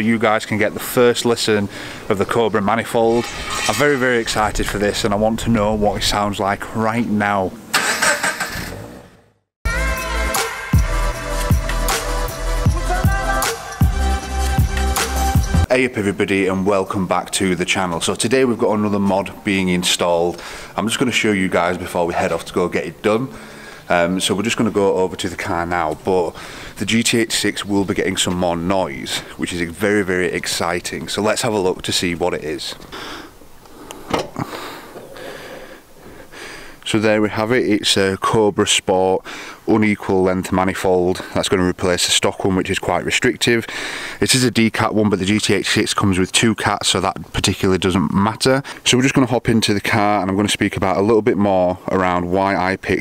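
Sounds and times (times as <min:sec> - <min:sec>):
music with heavy bass beat: 0:09.7 - 0:15.7.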